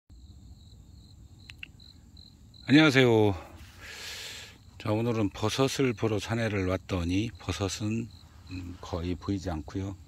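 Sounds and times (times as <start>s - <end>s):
cricket chirping: 0.1s - 10.0s.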